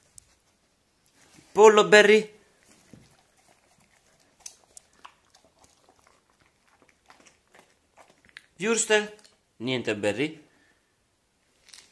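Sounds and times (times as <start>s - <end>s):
puppy chewing food: 2.5s - 9.4s.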